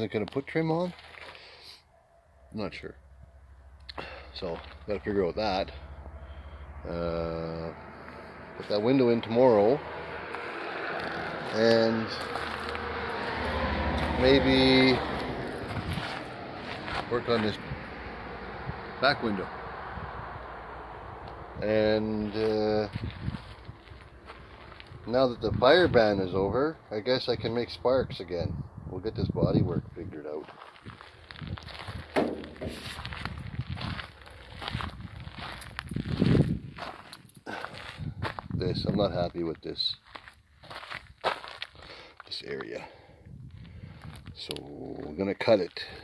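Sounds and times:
soft footsteps: 10.3 - 14.2, 15.2 - 17.6, 22.9 - 25.0, 30.4 - 38.5.

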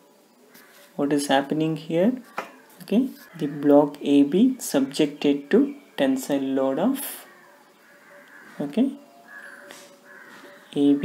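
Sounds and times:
faint bird calls: 0.4 - 1.0, 2.2 - 3.8, 7.0 - 11.0
person speaking: 1.0 - 7.3, 8.6 - 9.1, 10.6 - 11.0.

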